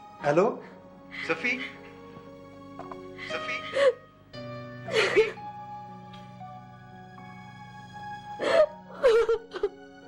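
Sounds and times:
soft background music: 0:00.0 - 0:10.0
woman sobbing: 0:02.8 - 0:04.1, 0:04.8 - 0:05.5, 0:08.4 - 0:09.8.

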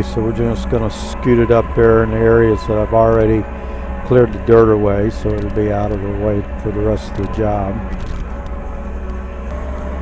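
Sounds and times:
diesel engine droning: 0:00.0 - 0:10.0.

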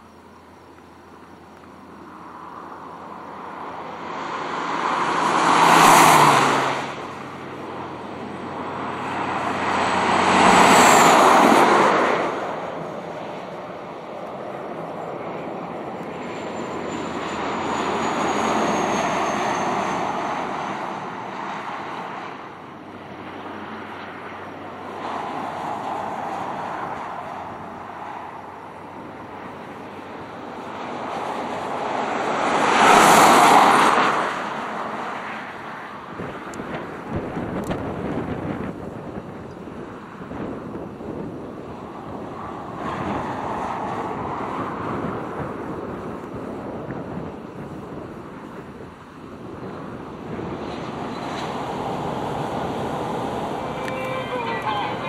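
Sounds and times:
moving car running noise: 0:00.0 - 0:55.0
wind rushing over microphone: 0:02.3 - 0:55.0.

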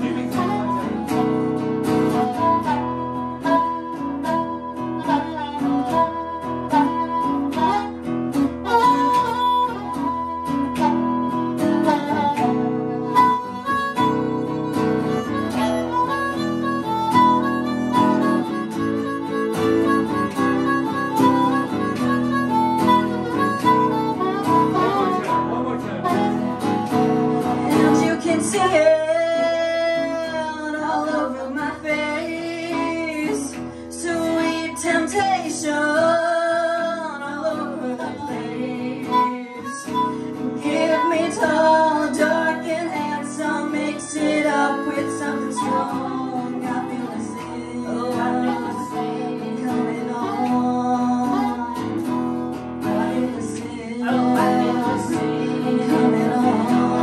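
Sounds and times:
guitar accompaniment: 0:00.0 - 0:57.0
harmonica melody: 0:00.0 - 0:57.0
person singing: 0:00.0 - 0:57.0.

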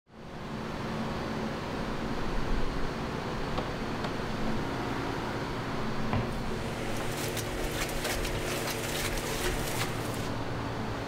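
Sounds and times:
machinery humming: 0:02.8 - 0:11.0.

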